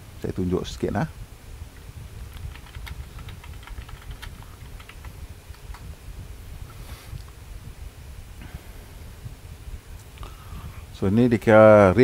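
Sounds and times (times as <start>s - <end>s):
low steady rumble: 0.0s - 12.0s
typing on computer keyboard: 2.3s - 5.8s.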